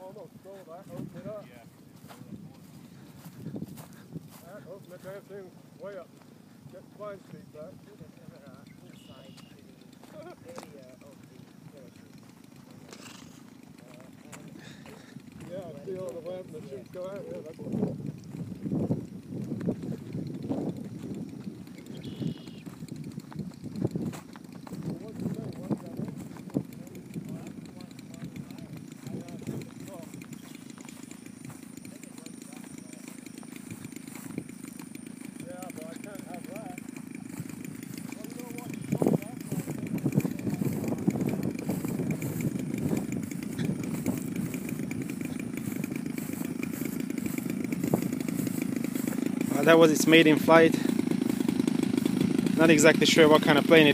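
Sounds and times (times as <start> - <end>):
model plane engine running: 0.0 - 53.9.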